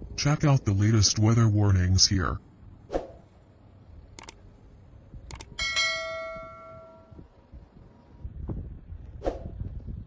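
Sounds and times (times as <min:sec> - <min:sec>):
mouse click: 0:04.2 - 0:04.4, 0:05.3 - 0:05.5
bright bell chime: 0:05.6 - 0:07.2.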